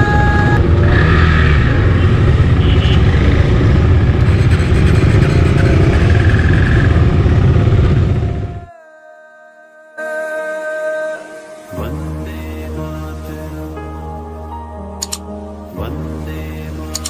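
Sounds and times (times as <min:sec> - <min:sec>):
motorcycle engines rumbling: 0:00.0 - 0:08.7.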